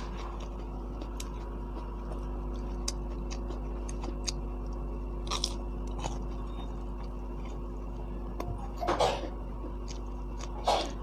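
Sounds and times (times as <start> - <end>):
crisp pastry crunching when bitten: 0.0 - 8.1, 9.6 - 11.0.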